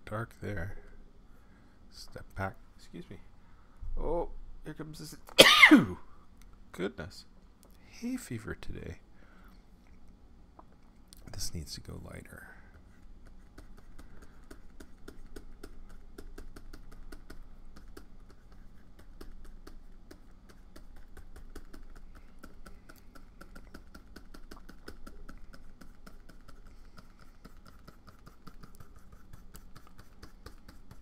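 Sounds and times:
steady low hum: 0.0s - 31.0s
stylus tapping on screen: 13.5s - 31.0s.

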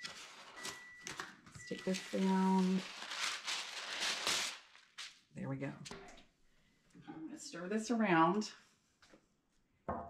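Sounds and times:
paper tearing rasp: 2.0s - 5.1s.

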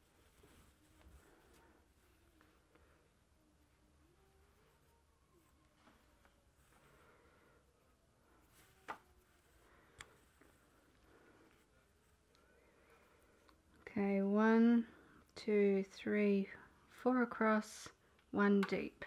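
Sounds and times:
faint handling of yarn: 0.0s - 19.0s.

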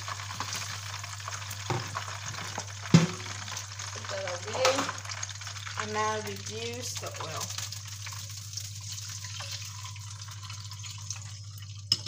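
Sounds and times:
hot oil sizzling in a wok: 0.0s - 12.0s.

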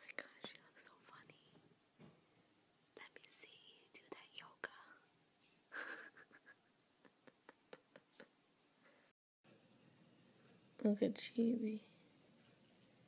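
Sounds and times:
person whispering: 0.0s - 1.6s, 3.0s - 5.0s.

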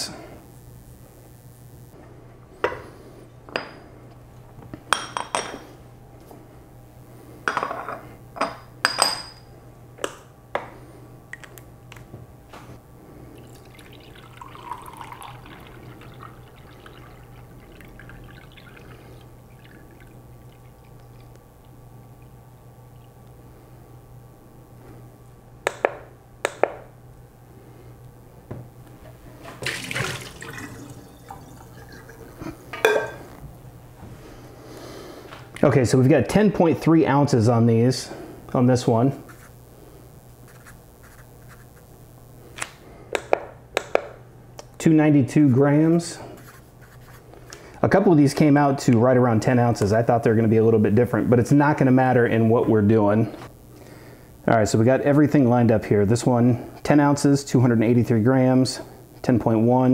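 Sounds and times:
water pouring into metal jar: 13.4s - 21.4s, 29.5s - 32.4s.

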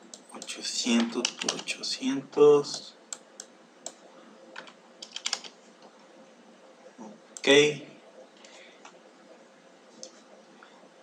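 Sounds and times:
keyboard keystrokes: 4.6s - 5.5s.

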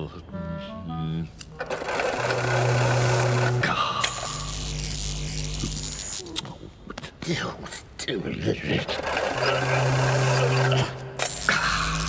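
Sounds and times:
low electric hum: 0.0s - 12.0s
cartoon electric generator whirring: 1.5s - 6.3s, 8.8s - 12.0s.

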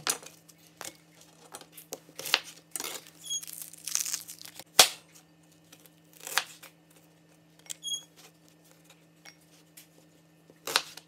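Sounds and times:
onion skin crackling and tearing: 2.2s - 4.7s.

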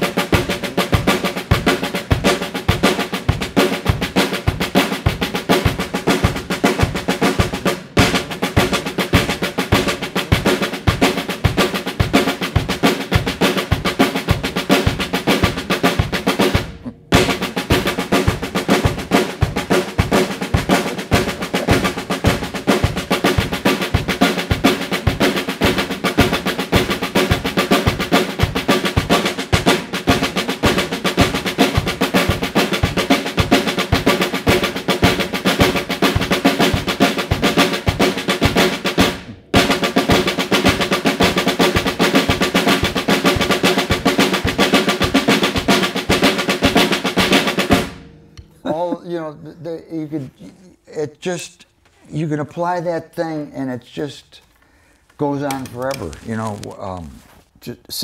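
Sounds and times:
drums played with sticks: 0.0s - 51.8s, 55.2s - 57.0s.

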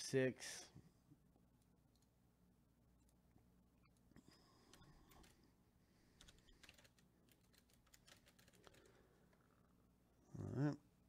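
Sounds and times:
computer keyboard typing: 4.6s - 5.4s, 6.2s - 9.0s.

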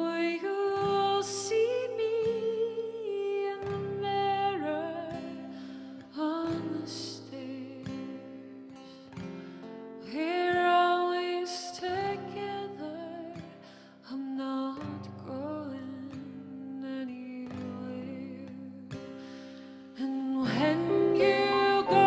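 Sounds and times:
woman singing slow song: 0.0s - 9.2s, 10.0s - 22.0s
acoustic guitar: 0.0s - 22.0s.

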